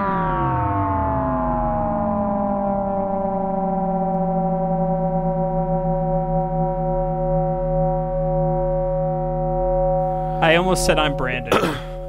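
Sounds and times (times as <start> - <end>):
held synthesizer chord: 0.0 - 12.0.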